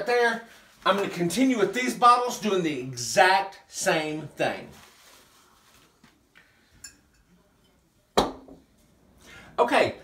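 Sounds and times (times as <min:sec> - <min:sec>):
glass bottles and dishes clinking: 0:06.8 - 0:08.6.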